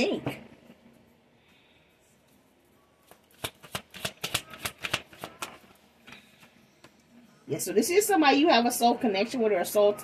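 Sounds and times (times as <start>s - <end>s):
cards being shuffled: 3.1s - 5.7s.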